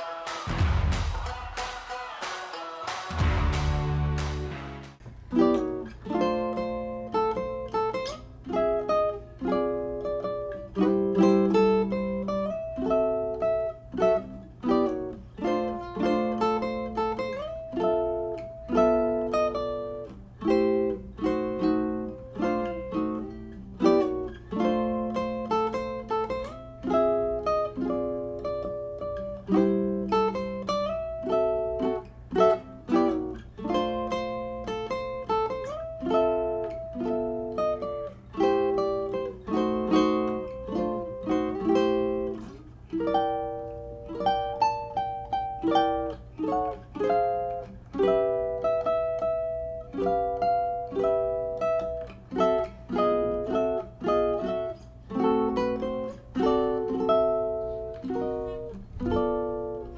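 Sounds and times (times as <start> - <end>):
ukulele melody: 0.0 - 59.9.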